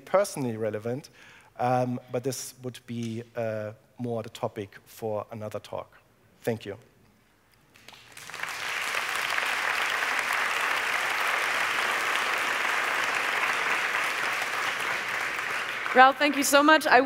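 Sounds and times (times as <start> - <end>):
audience applauding: 7.8 - 17.0.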